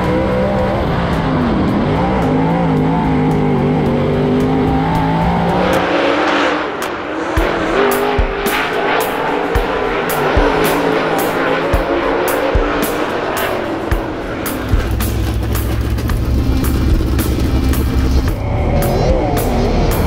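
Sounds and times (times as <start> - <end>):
race car engine running: 0.0 - 20.0
music with steady drum beat: 7.4 - 20.0.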